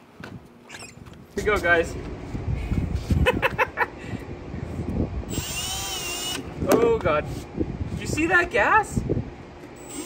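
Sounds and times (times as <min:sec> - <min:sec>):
cordless drill whining: 0:05.3 - 0:06.5, 0:09.8 - 0:10.0.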